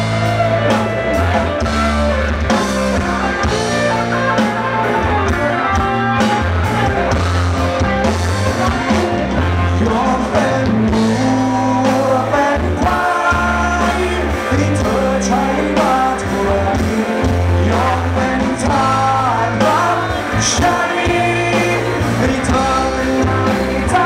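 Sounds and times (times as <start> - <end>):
bass line: 0.0 - 24.0
drum kit: 0.0 - 24.0
electric guitars: 0.0 - 24.0
person singing: 8.4 - 24.0.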